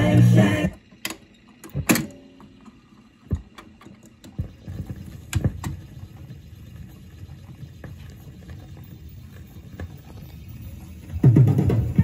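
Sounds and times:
record changer clicks and clunks: 0.0 - 6.0
record playing: 0.0 - 12.0.

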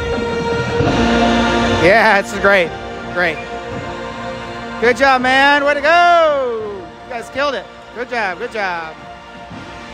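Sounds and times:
marching band sustained chord: 0.0 - 9.9
man's voice: 1.6 - 3.7, 4.6 - 9.0.

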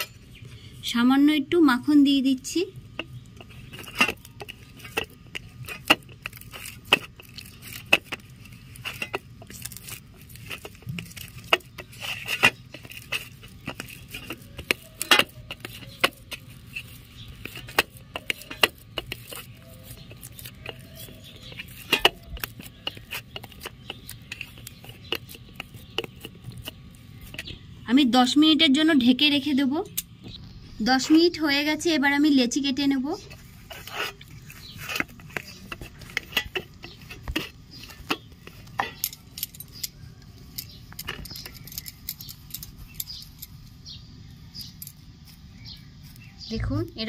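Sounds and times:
hands kneading sticky dough: 0.0 - 29.7, 30.3 - 47.0.

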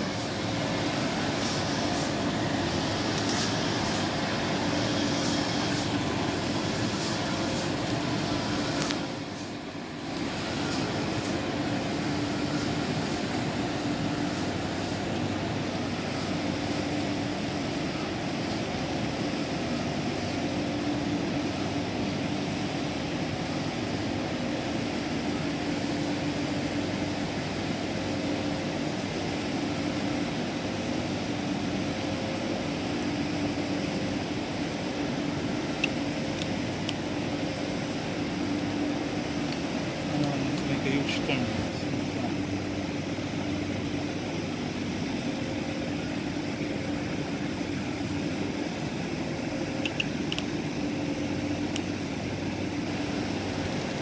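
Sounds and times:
rushing noise: 0.0 - 21.9
steady mechanical hum: 0.0 - 54.0.

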